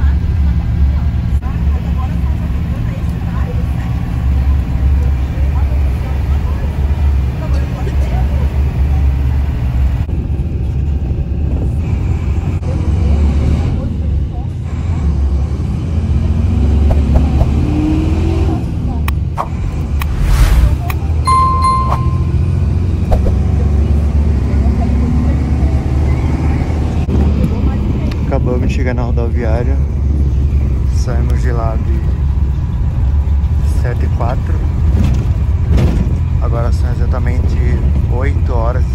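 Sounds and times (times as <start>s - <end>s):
engine and road rumble: 0.0s - 38.9s.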